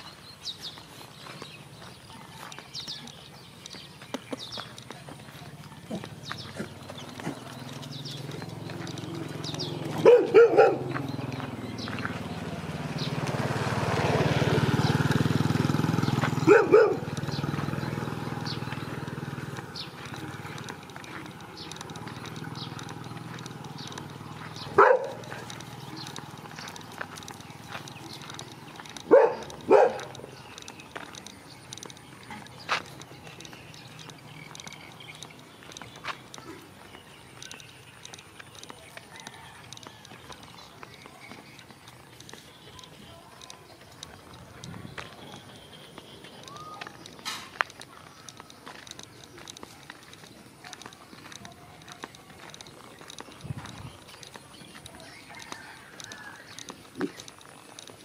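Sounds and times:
footsteps on dirt road: 0:00.0 - 0:58.0
dogs barking: 0:05.4 - 0:12.5, 0:16.2 - 0:34.8.

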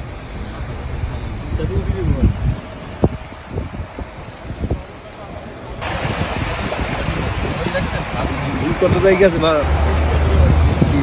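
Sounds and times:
vehicle rumble through water: 0:00.0 - 0:11.0
wind buffeting microphone: 0:00.0 - 0:11.0.

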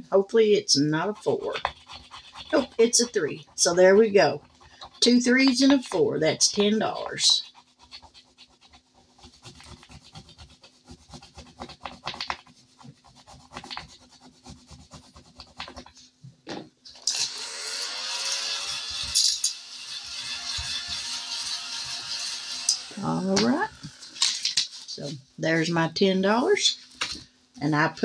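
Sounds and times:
tool scraping paper coating: 0:00.9 - 0:16.0, 0:18.3 - 0:25.1.

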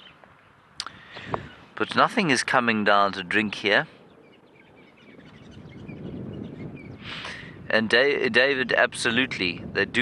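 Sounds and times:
faint bird chirps: 0:00.0 - 0:02.2, 0:03.8 - 0:07.4
wind rumble on microphone: 0:00.0 - 0:10.0.

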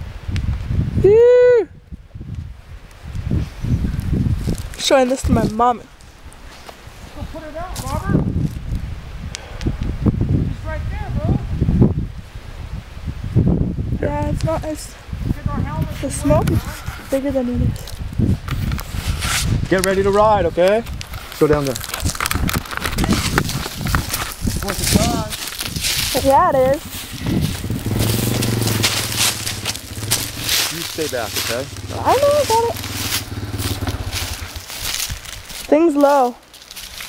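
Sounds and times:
wind buffeting microphone: 0:00.0 - 0:35.8
dry leaves rustling: 0:04.0 - 0:08.9, 0:19.9 - 0:37.0
scraping and crackling noise: 0:17.7 - 0:35.7
dirt bike engine running: 0:26.2 - 0:34.9.

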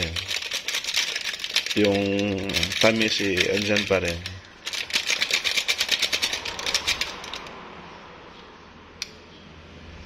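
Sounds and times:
foil sachet crinkling: 0:00.0 - 0:05.4.

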